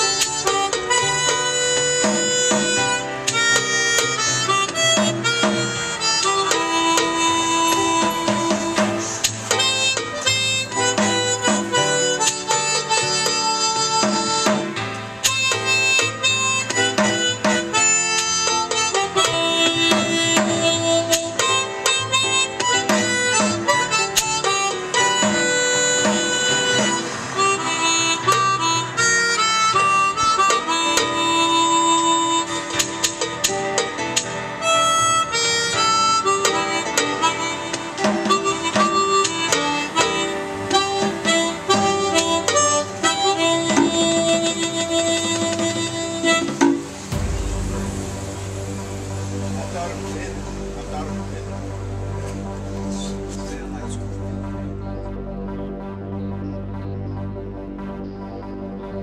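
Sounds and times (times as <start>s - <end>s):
hand percussion beat: 0.0s - 28.6s, 38.0s - 50.7s
harmonica melody: 0.0s - 58.7s.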